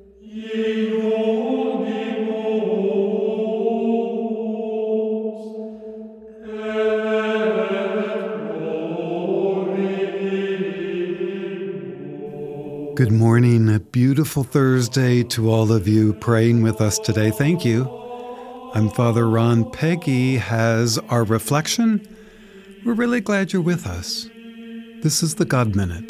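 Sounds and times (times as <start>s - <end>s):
vocal chanting on held notes: 6.4s - 26.0s
man speaking: 13.0s - 18.0s, 18.8s - 22.0s, 22.8s - 24.3s, 25.0s - 26.0s.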